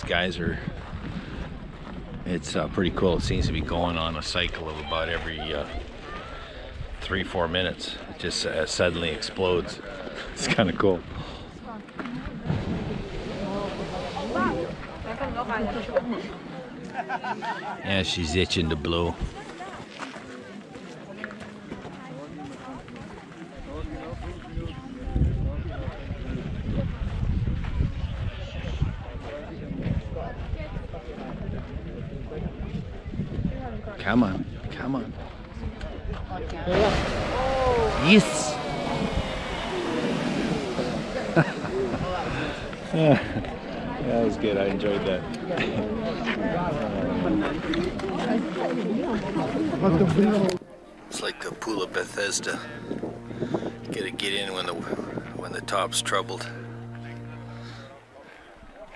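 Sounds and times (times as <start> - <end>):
onlookers' voices: 0.0 - 58.9
geyser rushing water and steam: 12.4 - 15.6, 36.7 - 44.2
excited voices: 36.7 - 44.0.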